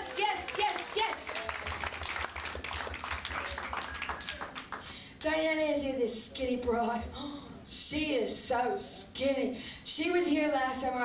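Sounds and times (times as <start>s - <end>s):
audience clapping: 0.0s - 5.0s.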